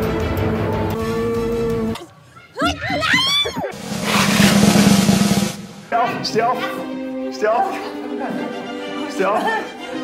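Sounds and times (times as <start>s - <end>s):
snare drum roll: 3.7s - 6.0s.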